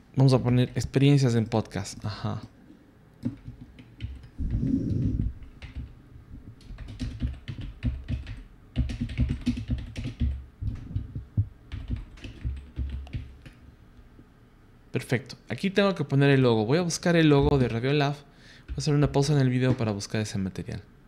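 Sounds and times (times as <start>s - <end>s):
typing on computer keyboard: 3.2s - 4.4s, 5.2s - 6.0s, 6.6s - 13.6s.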